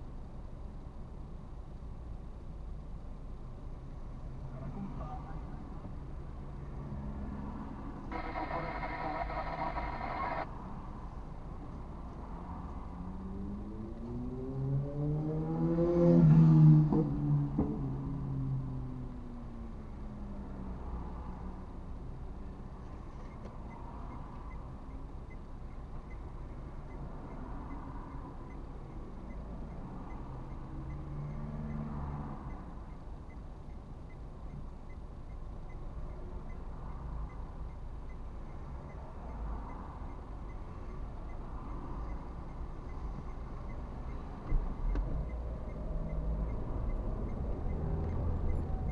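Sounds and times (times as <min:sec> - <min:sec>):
passing vehicle engine: 0:06.4 - 0:10.8, 0:12.0 - 0:19.1, 0:38.7 - 0:48.9
idling engines rumble: 0:08.0 - 0:11.8.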